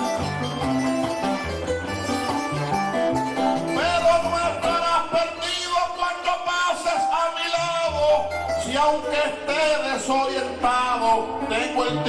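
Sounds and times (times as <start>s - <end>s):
low bass notes: 0.0s - 5.6s, 7.5s - 12.0s
acoustic guitars playing: 0.0s - 12.0s
man singing long note: 3.8s - 8.2s.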